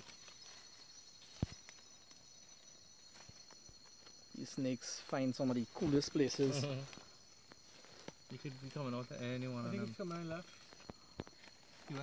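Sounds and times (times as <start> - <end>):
insect chorus: 0.0 - 12.0.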